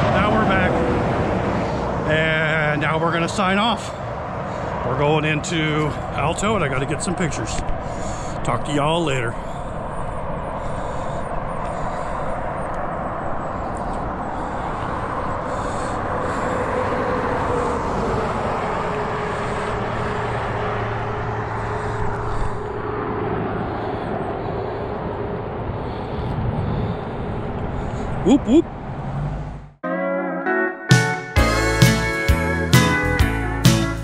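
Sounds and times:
car engine hum: 0.0s - 29.8s
highway traffic road noise: 0.0s - 29.8s, 31.4s - 34.0s.

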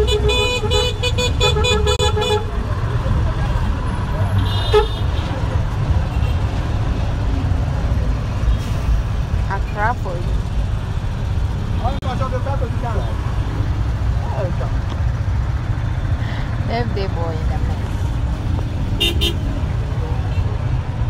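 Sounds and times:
motor tricycle engine rumble: 0.0s - 21.0s
horn toot: 19.0s - 19.5s.

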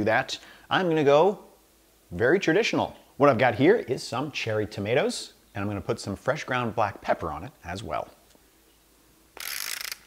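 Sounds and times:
pepper mill grinding: 9.4s - 10.0s.

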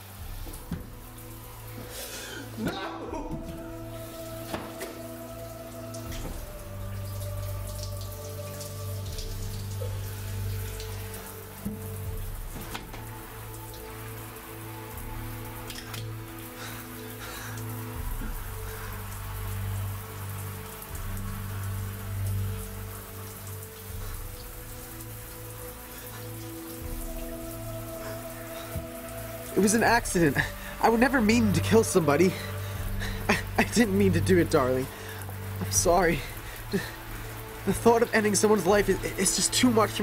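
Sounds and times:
low held orchestral chords: 0.0s - 40.0s
sharp drips: 0.0s - 40.0s
steady rain: 0.0s - 40.0s.

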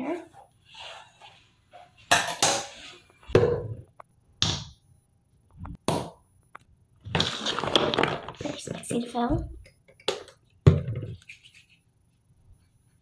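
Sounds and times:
bottles scraping on countertop: 0.7s - 2.0s
plastic bottles knocking on countertop: 9.3s - 11.2s.

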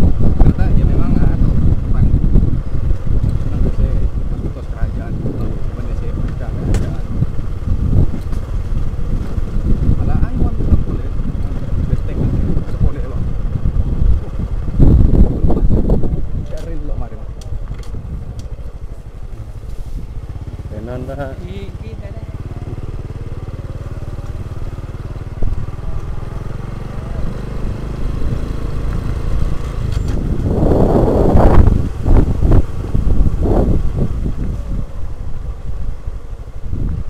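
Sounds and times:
motorcycle engine running: 0.0s - 37.0s.

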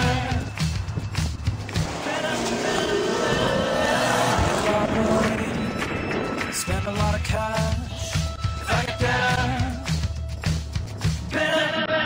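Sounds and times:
background pop music: 0.0s - 12.0s
car engine: 1.2s - 7.9s.

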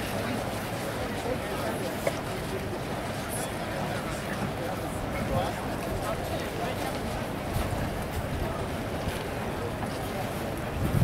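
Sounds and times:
murmur of background voices: 0.0s - 11.0s
wind rumbling on microphone: 7.2s - 11.0s.

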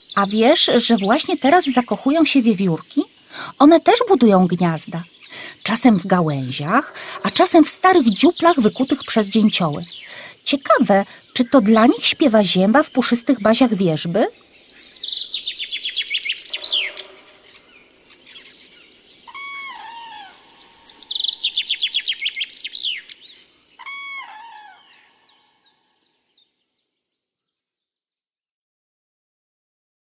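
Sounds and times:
chaffinch singing: 0.0s - 27.2s
lower bird call: 14.7s - 26.1s.

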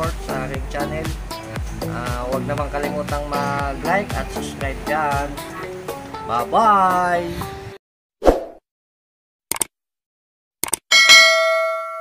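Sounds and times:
button clicks: 10.6s - 10.8s
notification bell ding: 10.9s - 12.0s.

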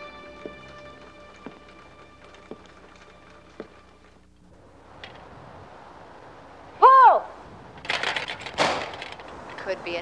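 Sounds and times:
person shouting: 6.8s - 7.3s.

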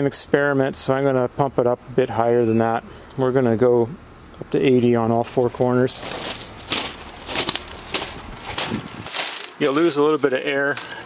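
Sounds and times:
footsteps on gravel: 5.5s - 11.0s.

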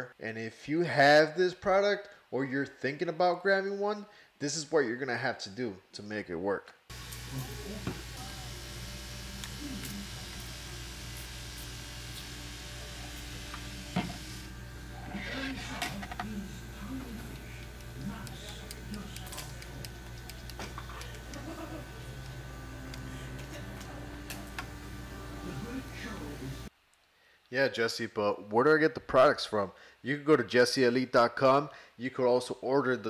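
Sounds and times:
low room hum: 6.9s - 27.3s.

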